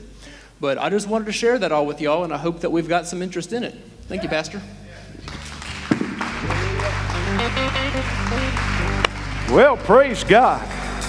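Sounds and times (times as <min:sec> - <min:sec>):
church band playing: 0:04.0 - 0:11.0
congregation applauding: 0:05.2 - 0:11.0.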